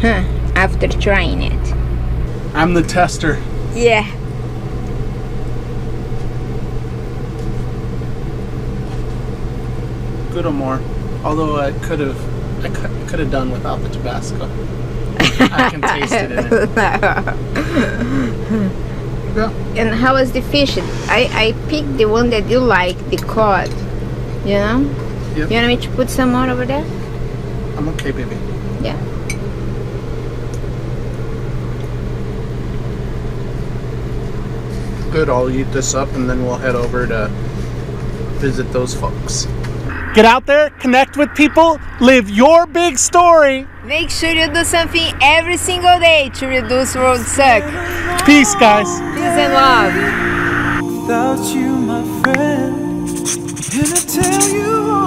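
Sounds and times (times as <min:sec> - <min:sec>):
low mechanical motor hum: 0:00.0 - 0:51.1.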